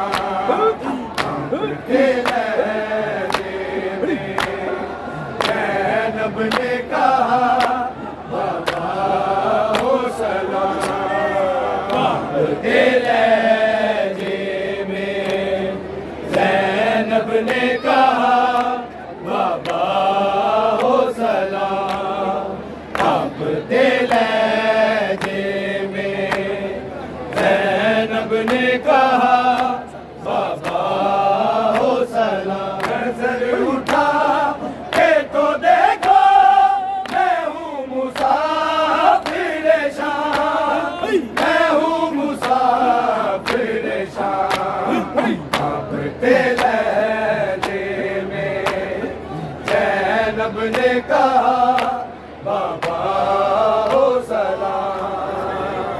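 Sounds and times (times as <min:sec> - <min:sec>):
men chanting: 0:00.0 - 0:26.8, 0:27.4 - 0:55.9.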